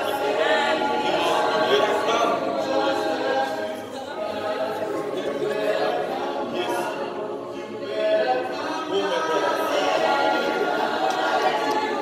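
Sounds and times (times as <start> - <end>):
choir singing a cappella: 0.0 - 12.0.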